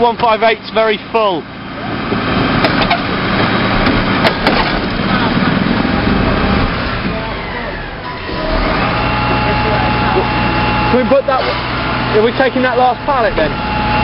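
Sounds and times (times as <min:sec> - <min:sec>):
truck engine and hydraulics whine: 0:00.0 - 0:14.0
rubbish crashing and crunching: 0:02.2 - 0:05.5.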